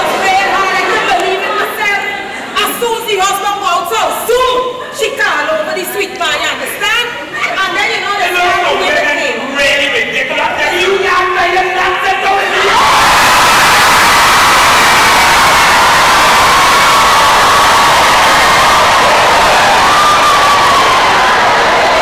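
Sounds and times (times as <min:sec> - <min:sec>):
audience laughing and cheering: 0:00.0 - 0:02.8, 0:12.4 - 0:22.0.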